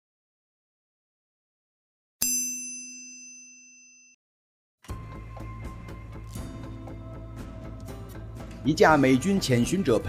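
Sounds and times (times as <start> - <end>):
bell-like ding: 2.2 - 4.2
music: 4.8 - 10.0.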